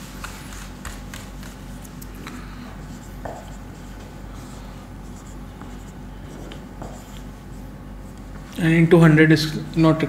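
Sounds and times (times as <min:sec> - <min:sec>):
marker pen writing on whiteboard: 0:00.0 - 0:09.1
low steady hum: 0:00.0 - 0:10.0.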